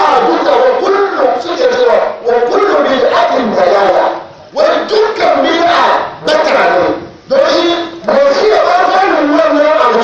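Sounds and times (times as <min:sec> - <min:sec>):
man shouting into a microphone: 0:00.0 - 0:10.0.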